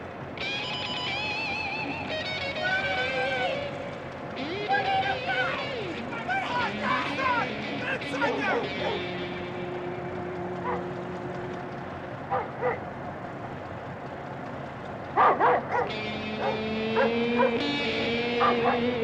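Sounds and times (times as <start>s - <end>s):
sustained music notes: 0.1s - 19.0s
dog barking: 8.5s - 9.1s, 10.6s - 10.9s, 12.3s - 12.8s, 15.2s - 17.7s, 18.3s - 19.0s.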